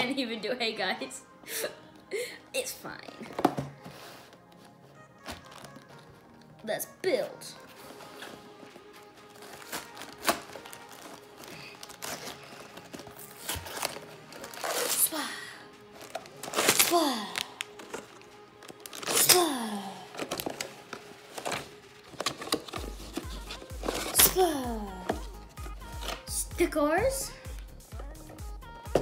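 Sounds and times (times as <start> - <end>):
background music with falling tones: 0.0 - 29.0
plastic bags crinkling: 7.7 - 26.3.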